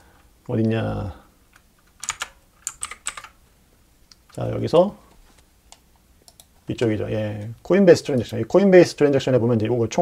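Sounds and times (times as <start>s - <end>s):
keyboard keys clicking: 1.6s - 3.4s, 5.7s - 6.5s.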